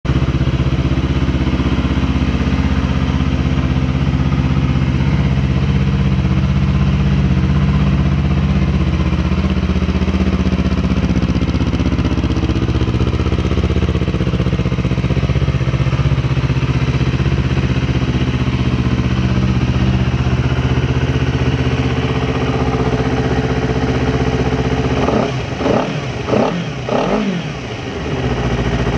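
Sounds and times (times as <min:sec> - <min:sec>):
motorcycle engine idling: 0:00.0 - 0:28.9
engine revving: 0:24.4 - 0:28.9.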